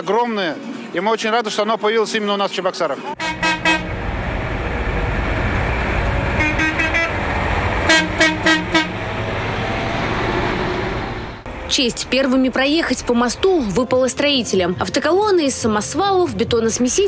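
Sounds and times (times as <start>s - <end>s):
dump trucks driving by: 2.8s - 15.9s
truck horns honking: 3.1s - 12.0s.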